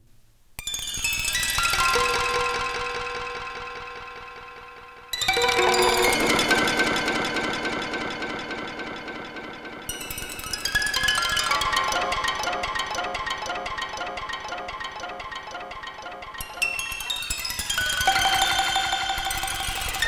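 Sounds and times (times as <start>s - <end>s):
synthesizer chord: 5.3s - 16.9s
fast repeating synth notes: 5.4s - 17.1s.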